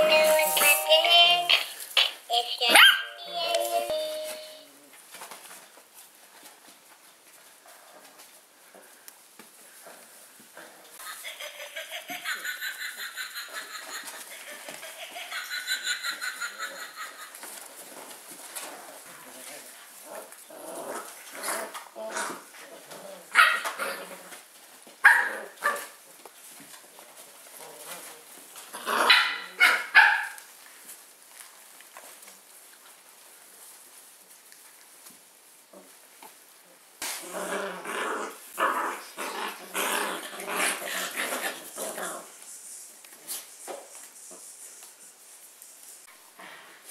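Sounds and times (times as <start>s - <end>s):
sharp puppy barks: 2.7s - 3.2s, 25.0s - 25.9s, 29.1s - 30.4s
puppies growling: 17.9s - 24.5s, 37.1s - 42.4s.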